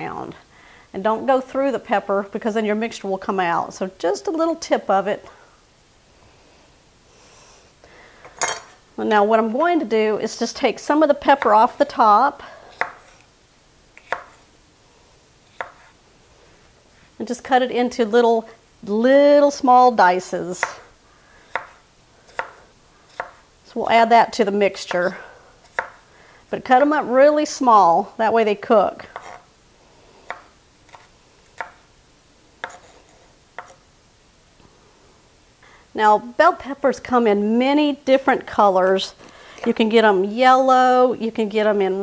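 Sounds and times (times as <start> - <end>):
knife chopping on wooden board: 12.8 - 13.2, 14.0 - 14.4, 15.6 - 15.9, 21.5 - 23.4, 25.7 - 26.0, 30.3 - 31.8, 32.6 - 33.0, 33.6 - 33.8
knife striking cutting board: 14.0 - 14.4.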